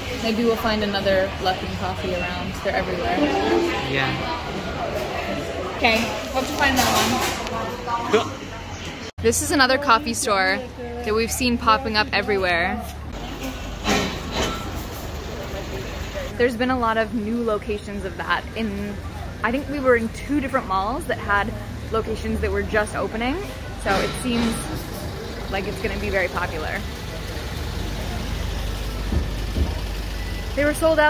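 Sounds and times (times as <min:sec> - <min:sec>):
street rumble and hiss: 0:00.0 - 0:31.0.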